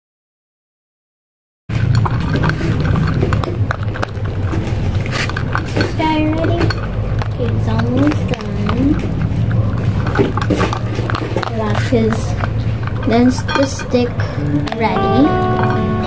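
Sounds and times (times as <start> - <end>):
dog crunching kibble from metal bowl: 1.7 - 15.8
steady low hum: 1.7 - 16.0
person's voice: 5.9 - 6.8, 7.4 - 9.0, 11.5 - 12.4, 13.1 - 15.5.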